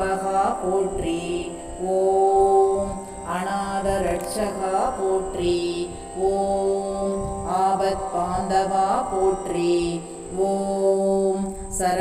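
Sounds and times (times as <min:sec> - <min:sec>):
devotional chant singing: 0:00.0 - 0:12.0
steady drone: 0:00.0 - 0:12.0.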